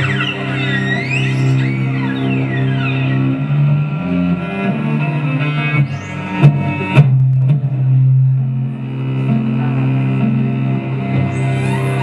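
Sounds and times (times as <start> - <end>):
high sliding melody: 0.0 - 6.5
bowed cello low note: 0.0 - 12.0.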